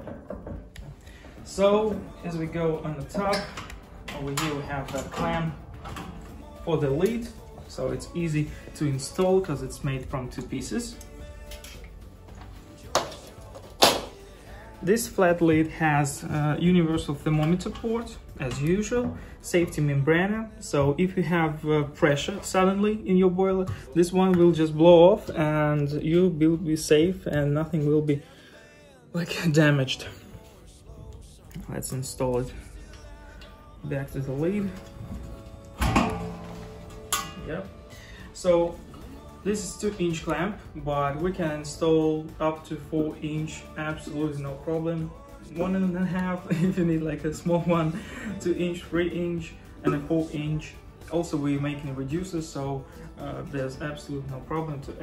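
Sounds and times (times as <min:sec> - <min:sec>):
metal lid clanking on rim: 0:35.8 - 0:37.4.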